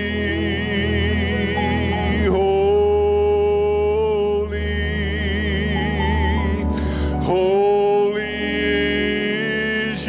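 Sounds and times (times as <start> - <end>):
low musical accompaniment: 0.0 - 10.0
men singing worship song: 0.0 - 10.0.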